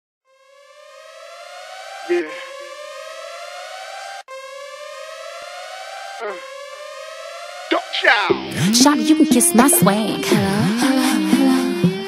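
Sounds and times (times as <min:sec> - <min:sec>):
siren wail rising in pitch: 0:00.3 - 0:11.9
hip-hop song: 0:07.7 - 0:12.0.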